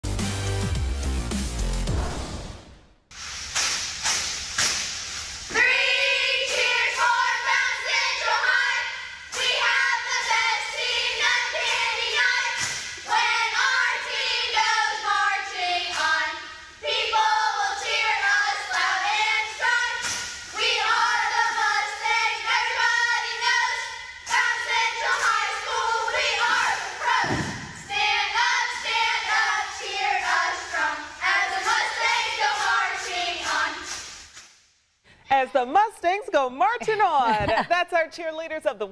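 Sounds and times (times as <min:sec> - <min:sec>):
intro music: 0:00.0 - 0:03.0
sharp hits: 0:00.7 - 0:05.4
hissy room sound: 0:03.1 - 0:35.1
cheerleaders chanting in unison: 0:05.5 - 0:34.2
thump: 0:27.0 - 0:27.9.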